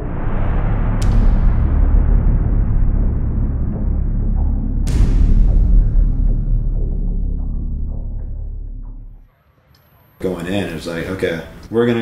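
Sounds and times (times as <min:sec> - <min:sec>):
deep rumbling drone: 0:00.0 - 0:09.3
sharp impact hit with hiss: 0:00.6 - 0:08.2.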